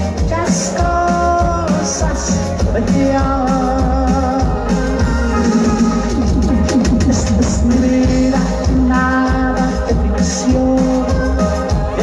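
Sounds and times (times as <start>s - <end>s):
band playing amplified music: 0.0s - 12.0s
steady bass line: 0.0s - 12.0s.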